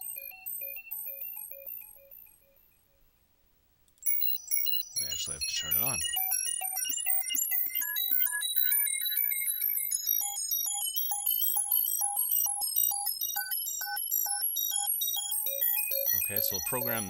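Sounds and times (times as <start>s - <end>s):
synthesizer bell arpeggio: 0.0s - 2.8s, 4.2s - 17.0s.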